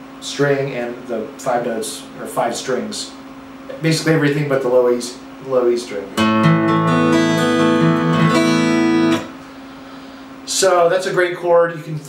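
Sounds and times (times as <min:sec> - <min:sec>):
acoustic guitar chord strummed: 0:06.1 - 0:09.4.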